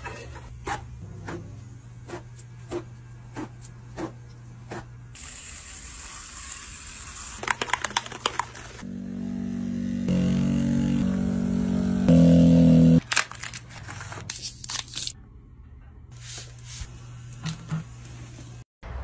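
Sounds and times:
tattoo pen buzzing: 8.9s - 13.0s.

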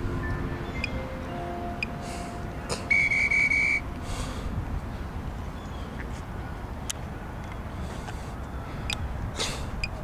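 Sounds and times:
high whistle-like tone: 2.8s - 3.9s.

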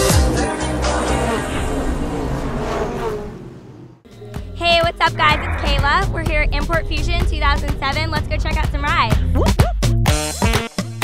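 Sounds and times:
electronic theme music: 4.1s - 9.4s.

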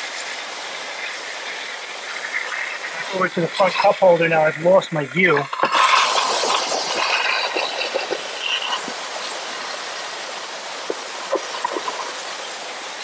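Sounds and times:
steam cleaner hissing: 0.0s - 13.0s
water spattering ticks: 0.1s - 13.0s.

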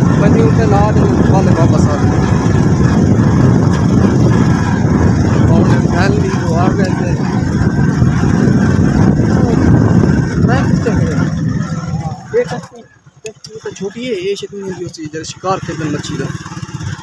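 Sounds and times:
motorcycle engine rumbling: 0.0s - 17.0s
wind buffeting microphone: 0.0s - 17.0s.

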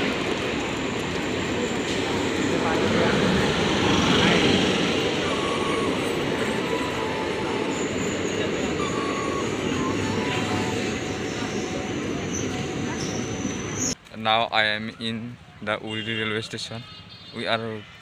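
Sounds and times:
train wheels on rails: 0.0s - 14.0s.

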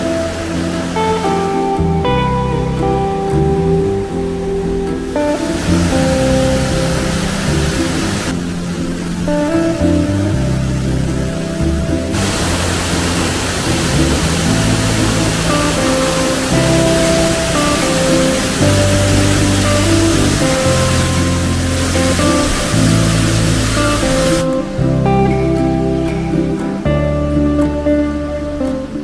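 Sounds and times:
waterfall rushing: 0.0s - 2.7s, 4.3s - 26.8s
background music: 0.0s - 29.0s.

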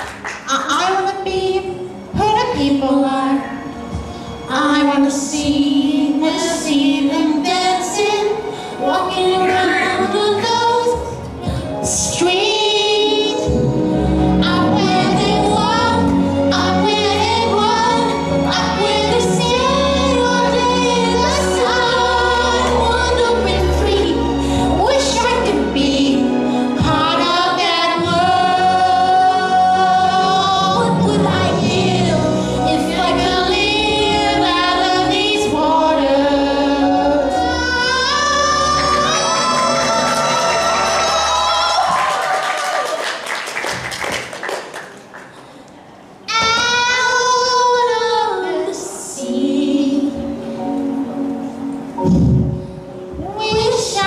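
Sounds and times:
song with sung vocals: 0.0s - 42.9s, 46.3s - 52.3s.

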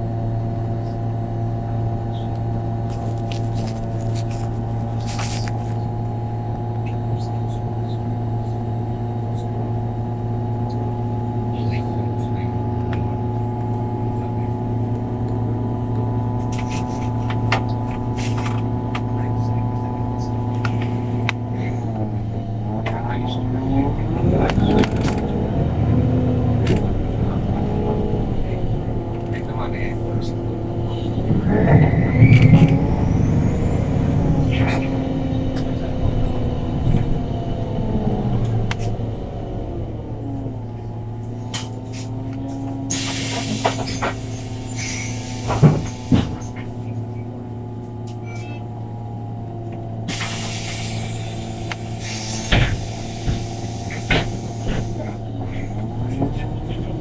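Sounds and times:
bus engine idling: 0.0s - 57.0s
bus pulling away: 0.0s - 57.0s.

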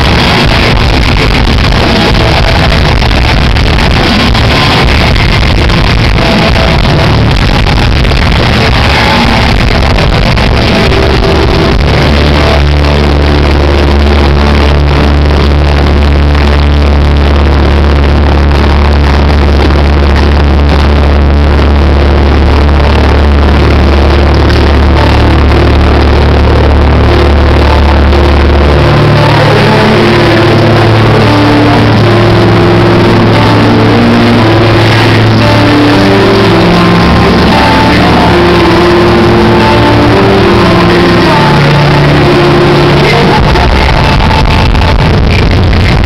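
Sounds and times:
loud live rock band: 0.0s - 46.0s.

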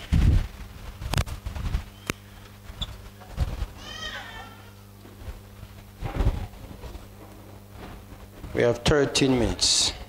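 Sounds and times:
steady low hum: 0.0s - 10.0s
person making meow-like cry: 3.8s - 4.7s.

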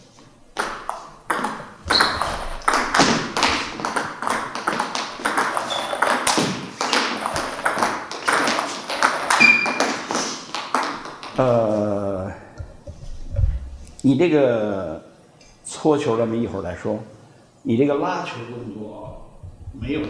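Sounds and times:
paddles striking ball: 0.6s - 11.4s
ping pong ball bouncing on table: 0.6s - 11.4s.

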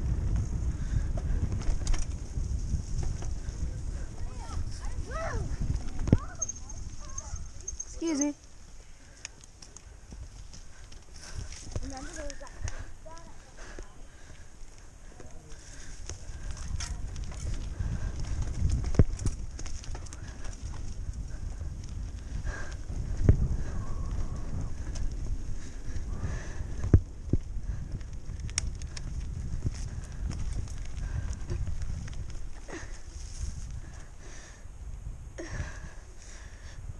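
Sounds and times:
bike knocking and rattling: 0.0s - 34.4s
bike tyres rumbling on dirt: 0.0s - 36.9s.

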